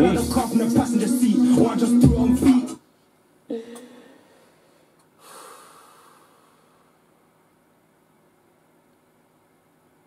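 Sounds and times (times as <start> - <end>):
man breathing out: 3.5 - 6.9.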